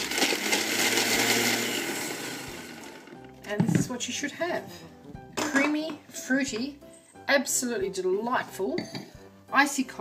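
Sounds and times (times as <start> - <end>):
blender crushing ice: 0.0 - 3.4.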